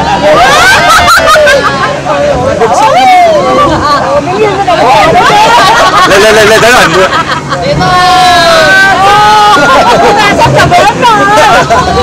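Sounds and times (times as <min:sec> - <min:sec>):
steady rushing noise: 0:00.0 - 0:12.0.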